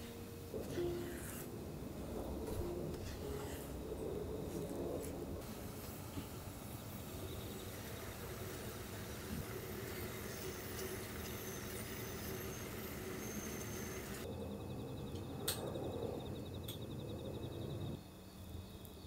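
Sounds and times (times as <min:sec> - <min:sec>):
steam hissing: 0:05.1 - 0:14.2.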